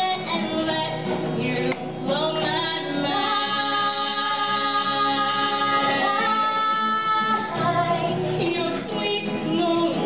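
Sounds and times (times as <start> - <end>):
acoustic guitar: 0.0 - 10.0
women singing pop song: 0.0 - 10.0.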